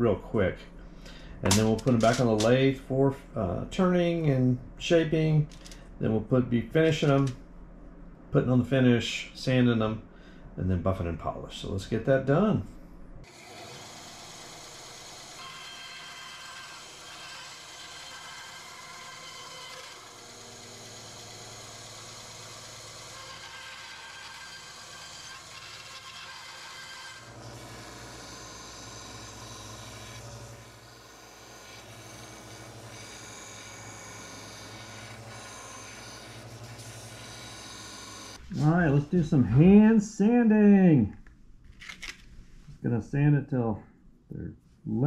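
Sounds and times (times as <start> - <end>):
bandsaw cutting wood: 13.3 - 38.8.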